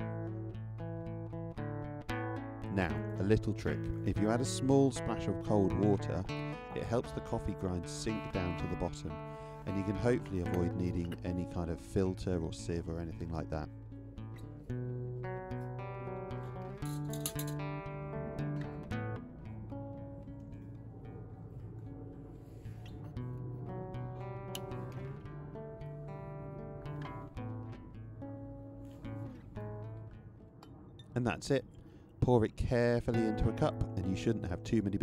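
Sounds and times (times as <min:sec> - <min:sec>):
acoustic guitar chords: 0:00.0 - 0:31.2, 0:33.1 - 0:35.0.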